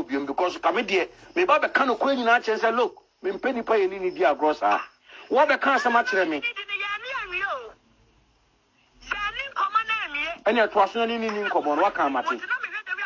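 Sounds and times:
person talking: 0:09.7 - 0:13.0.

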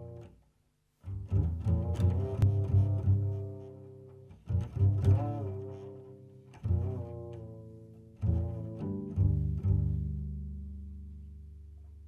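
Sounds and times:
double bass plucked notes: 0:00.0 - 0:00.4, 0:01.0 - 0:12.0.

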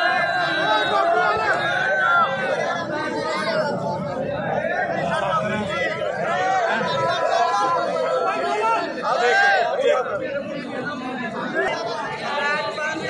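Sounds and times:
crowd of men talking: 0:00.0 - 0:13.0.

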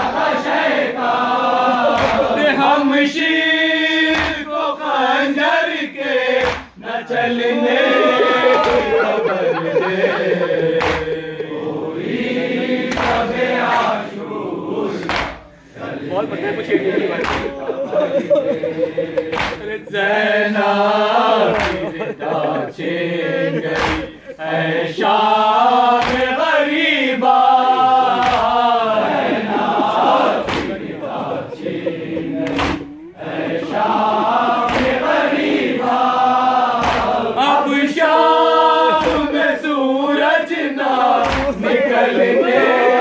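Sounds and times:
lead reciter singing: 0:00.0 - 0:43.0
men chanting a lament: 0:00.0 - 0:43.0
man singing lament through microphone: 0:06.8 - 0:12.0, 0:37.3 - 0:43.0.

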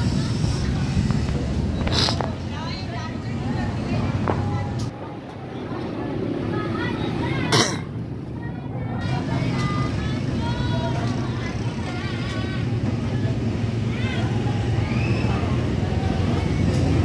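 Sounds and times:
faint voices: 0:00.0 - 0:17.0
motor vehicle engine rumbling: 0:00.0 - 0:17.0.

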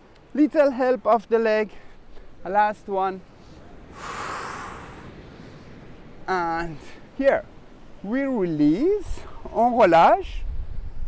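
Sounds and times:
surf: 0:00.0 - 0:10.6
person exhaling forcefully: 0:03.9 - 0:05.2.

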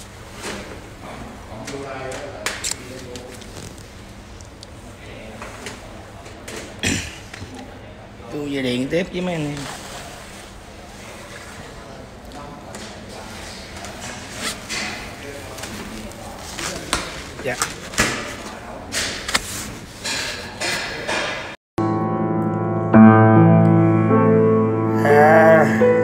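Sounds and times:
grand piano slow notes: 0:21.8 - 0:26.0
person speaking a word: 0:25.0 - 0:26.0.

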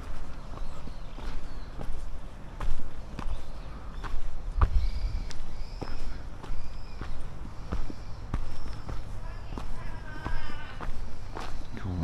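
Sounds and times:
footsteps walking: 0:00.0 - 0:12.0.

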